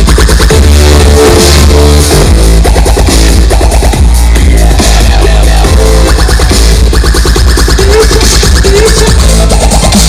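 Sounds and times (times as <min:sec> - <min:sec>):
heavy bass: 0:00.0 - 0:10.0
loud electronic dance music: 0:00.0 - 0:10.0.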